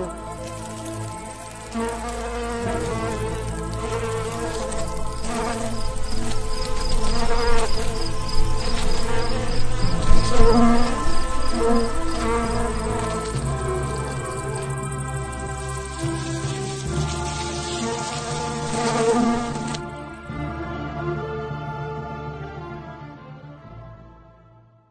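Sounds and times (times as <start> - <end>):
cartoon swarm of buzzing wings: 0.0 - 19.9.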